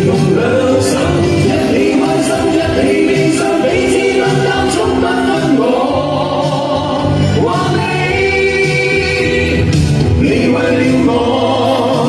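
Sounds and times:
backing music with bass and beat: 0:00.0 - 0:12.0
group singing through pa: 0:00.0 - 0:12.0.

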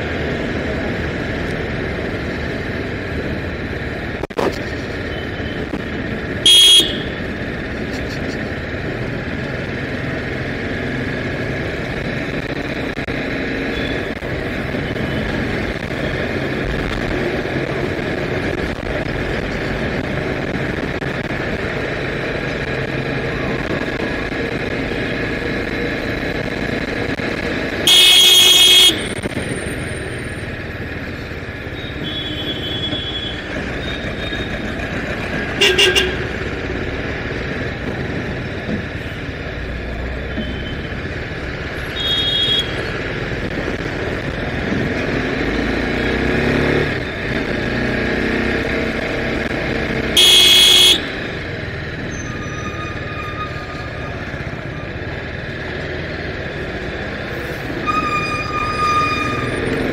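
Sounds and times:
road and wind noise: 0:00.0 - 0:59.9
vehicle horn blast: 0:06.4 - 0:07.2, 0:27.8 - 0:29.1, 0:35.6 - 0:36.3, 0:50.2 - 0:51.1
motorcycle engine running: 0:29.8 - 0:52.0.

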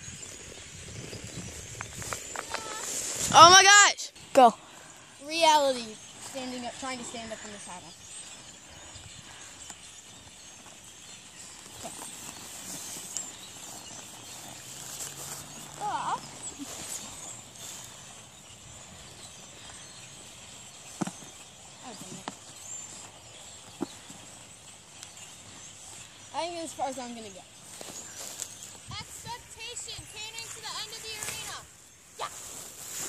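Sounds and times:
outdoor background noise: 0:00.0 - 0:33.0.

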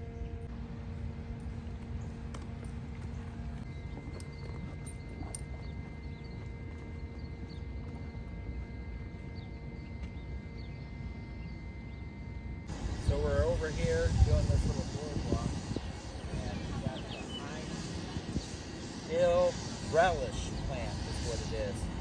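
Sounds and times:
faint steady hum: 0:00.0 - 0:22.0
footsteps on boardwalk: 0:00.5 - 0:10.4
wind rumbling on microphone: 0:12.7 - 0:22.0.

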